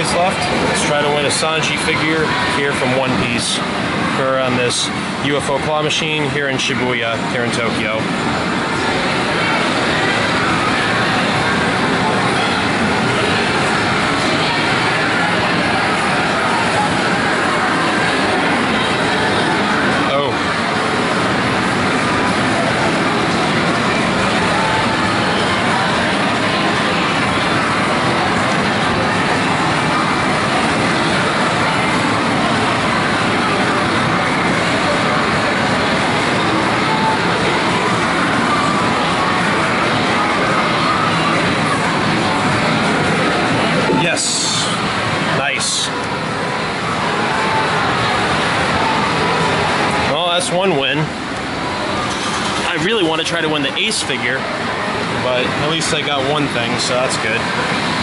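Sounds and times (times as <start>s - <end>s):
arcade machines: 0.0s - 58.0s
people's voices: 0.0s - 58.0s.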